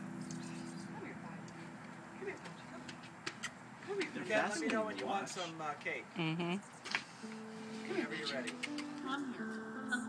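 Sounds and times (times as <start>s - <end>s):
hummingbird wings humming: 0.0s - 2.1s.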